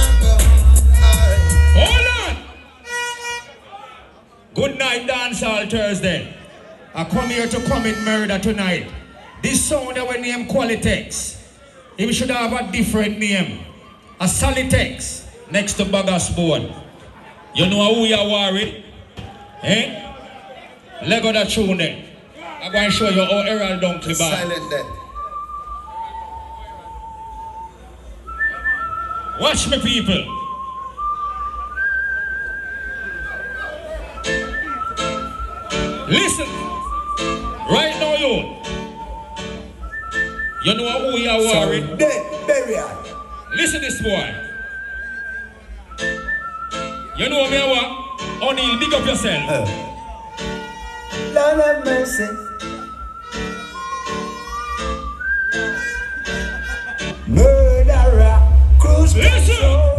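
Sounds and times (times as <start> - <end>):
electronic music over sound system: 0.0 - 2.6, 57.2 - 59.9
high steady whistle tone: 22.5 - 50.8, 51.8 - 59.9
deep bass hum: 57.3 - 59.9.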